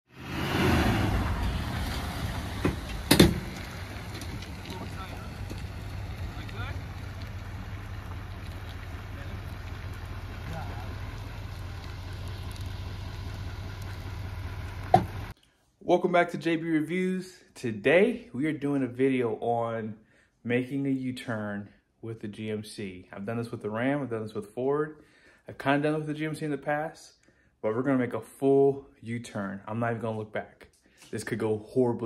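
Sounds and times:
diesel engine running: 1.0s - 15.3s.

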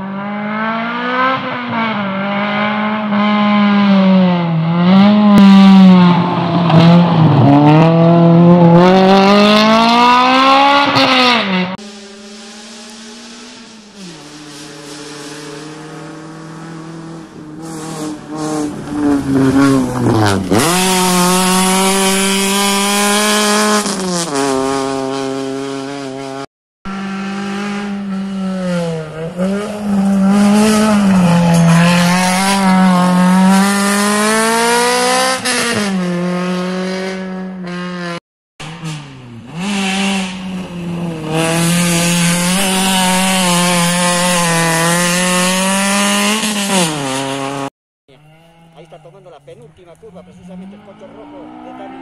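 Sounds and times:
gravel and tyre noise: 0.0s - 52.0s
rally car engines revving: 0.0s - 52.0s.

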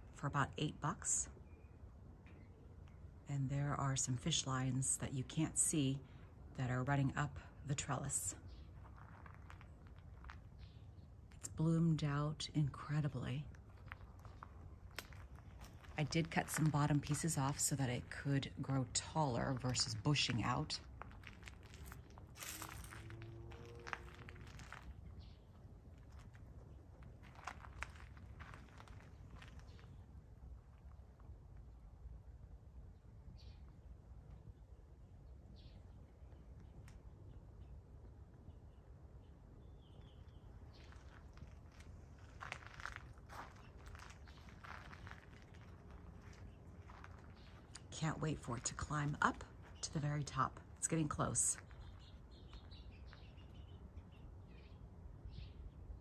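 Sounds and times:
low outdoor rumble: 0.0s - 56.0s
footsteps crunching on gravel: 8.7s - 10.7s, 13.6s - 25.3s, 25.9s - 30.0s, 40.7s - 49.8s.

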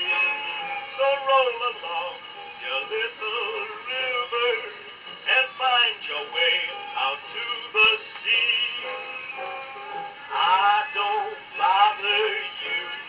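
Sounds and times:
man singing with orchestra: 0.0s - 9.4s, 10.3s - 13.0s.

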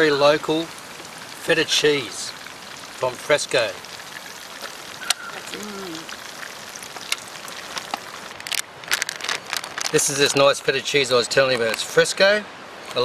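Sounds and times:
oil sizzling: 0.0s - 10.3s.

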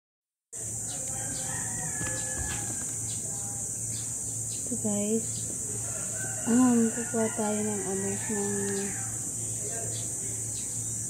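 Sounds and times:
steady high hiss: 0.6s - 11.0s
rooster crowing: 0.7s - 3.2s, 5.7s - 9.3s.

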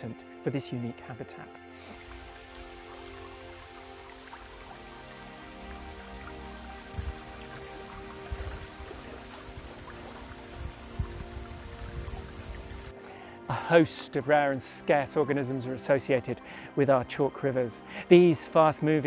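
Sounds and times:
soft background music: 0.0s - 19.0s
stream flowing over gravel: 1.9s - 13.2s.

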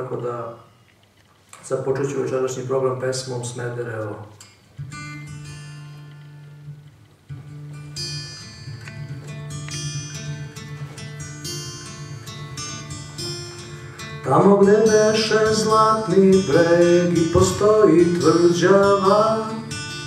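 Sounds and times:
acoustic guitar strumming: 4.3s - 20.0s.

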